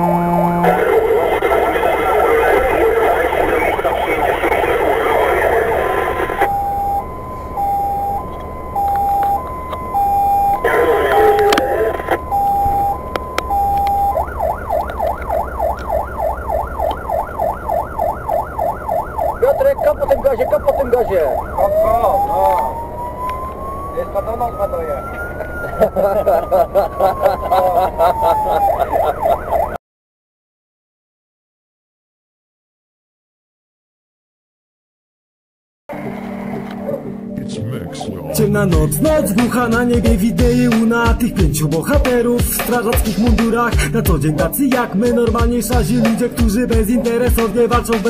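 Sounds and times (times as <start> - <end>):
fire engine electronic siren: 0.0 - 29.8.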